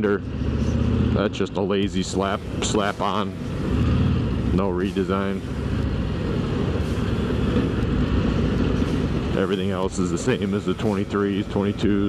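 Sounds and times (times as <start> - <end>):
road noise: 0.0 - 12.0.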